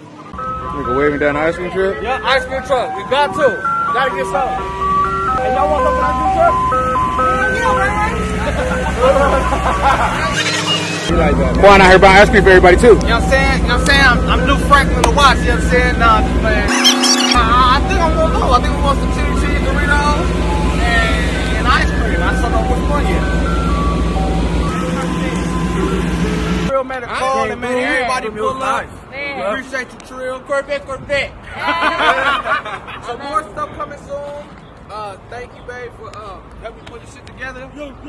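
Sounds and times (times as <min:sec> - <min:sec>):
truck engine hum: 0:00.0 - 0:26.8
ice cream truck chime melody: 0:00.0 - 0:28.2
voices: 0:05.2 - 0:23.8, 0:24.7 - 0:38.0.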